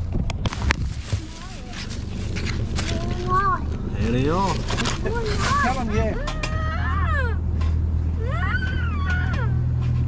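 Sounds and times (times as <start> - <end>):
dog whining: 5.5 - 7.4, 8.2 - 9.6.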